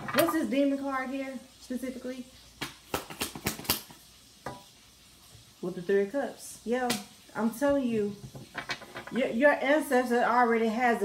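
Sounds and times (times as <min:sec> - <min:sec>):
cards snapping and flicking: 0:02.6 - 0:04.0.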